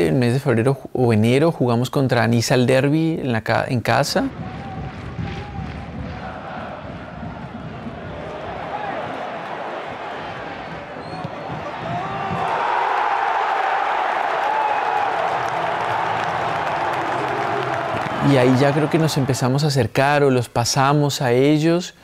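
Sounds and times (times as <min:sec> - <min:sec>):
stadium crowd cheering: 0:04.2 - 0:19.8.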